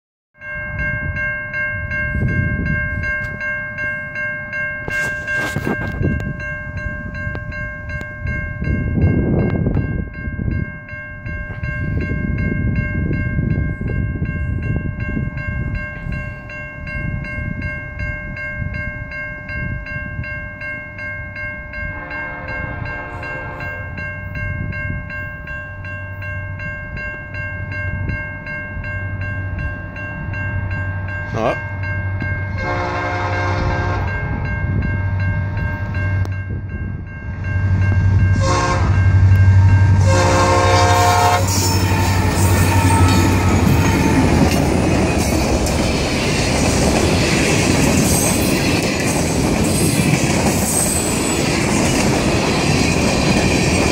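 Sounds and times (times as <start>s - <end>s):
level crossing bell ringing: 0.4s - 33.2s
freight train rumbling past: 0.5s - 53.9s.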